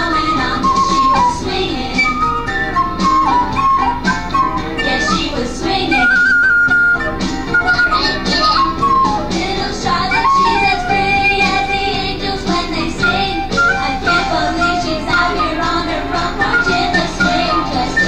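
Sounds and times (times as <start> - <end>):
musical accompaniment: 0.0 - 18.0
small wind instrument melody: 0.0 - 18.0.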